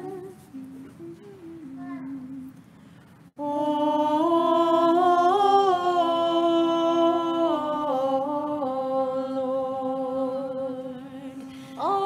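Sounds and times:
person humming softly: 0.0 - 2.6.

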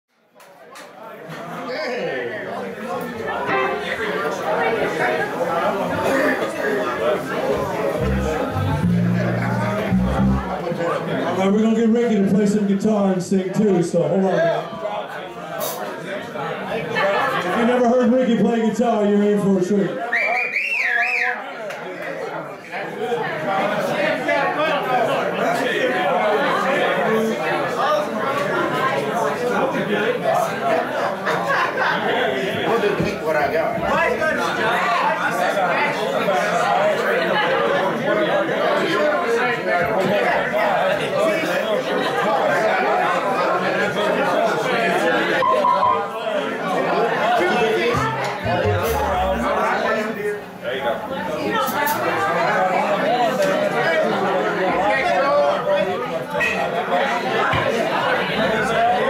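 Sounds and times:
crowd chatter: 0.1 - 59.0.

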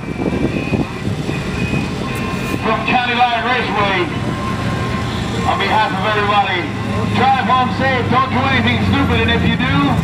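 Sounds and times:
announcer over loudspeaker: 0.0 - 10.0
car engines idling: 0.0 - 10.0.

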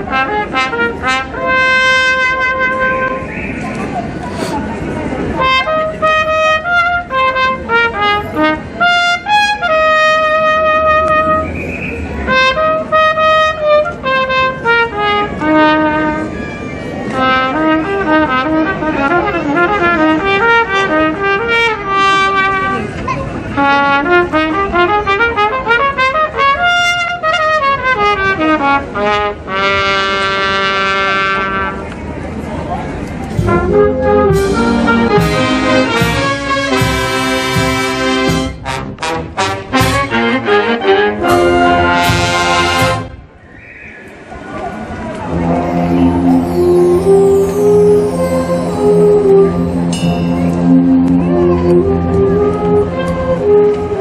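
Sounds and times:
brass band playing: 0.0 - 3.4, 5.2 - 31.9, 33.2 - 43.4, 45.2 - 54.0
trumpet melody: 0.0 - 3.4, 5.3 - 31.9, 33.3 - 43.3, 45.2 - 54.0.

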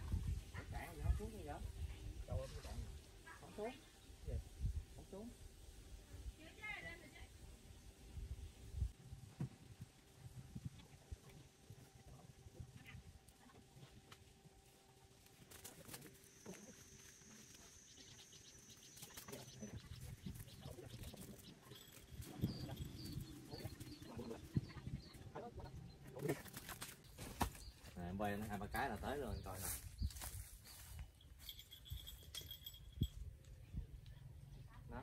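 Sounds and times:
rustling of leaves and stems: 14.6 - 24.6, 26.1 - 31.5
bird chirps: 16.4 - 26.2.

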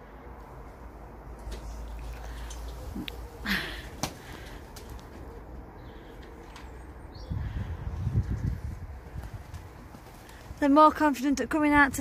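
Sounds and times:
pigeon wings flapping: 3.8 - 5.2, 9.2 - 10.7.

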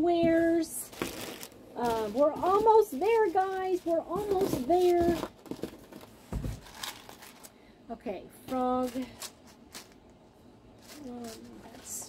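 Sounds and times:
plastic bags rustling: 0.3 - 7.6, 8.6 - 10.1, 10.7 - 12.0.

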